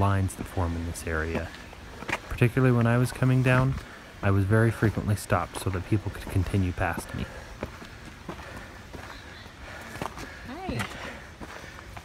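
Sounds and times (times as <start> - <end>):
footsteps on rock and gravel: 0.0 - 12.0.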